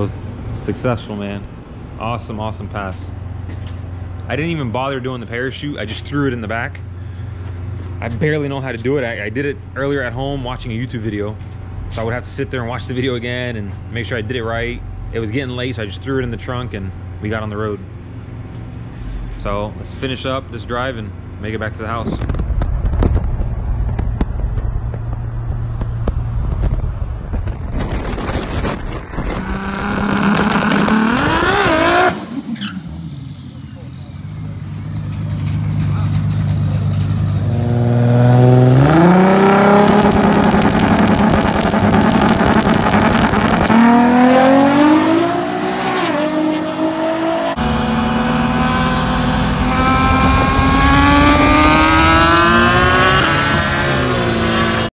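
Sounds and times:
turbocharged car engine revving: 0:27.3 - 0:54.9.

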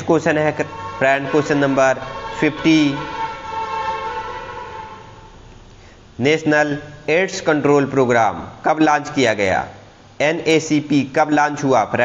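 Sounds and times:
sustained chord-like tone: 0:00.0 - 0:05.5.

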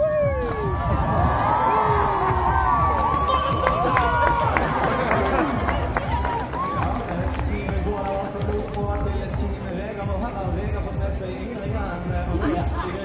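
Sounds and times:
crowd talking: 0:00.0 - 0:13.0
music over loudspeakers: 0:00.0 - 0:13.0.

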